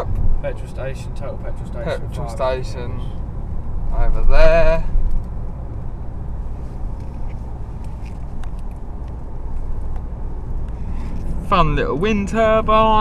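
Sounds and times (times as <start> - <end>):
car engine and tyre rumble: 0.0 - 13.0.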